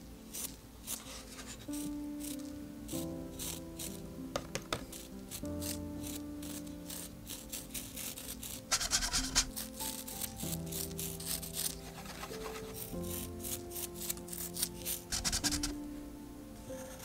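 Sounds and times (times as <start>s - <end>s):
soft background music: 0.0s - 17.0s
brush flicking paint: 0.3s - 15.9s.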